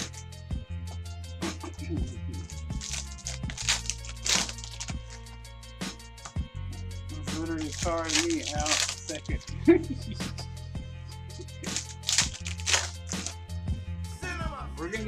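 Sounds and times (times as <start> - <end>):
background music: 0.0 - 15.0
person speaking: 1.6 - 5.2, 7.2 - 10.4
cards flicking and clicking: 2.4 - 5.3, 7.5 - 9.5, 11.6 - 13.4
foil wrappers crinkling: 2.4 - 5.3, 7.5 - 9.5, 11.6 - 13.4.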